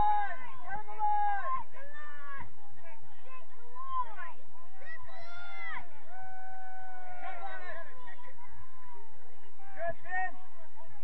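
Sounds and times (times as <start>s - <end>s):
voices shouting: 0.0s - 2.6s, 3.2s - 10.3s.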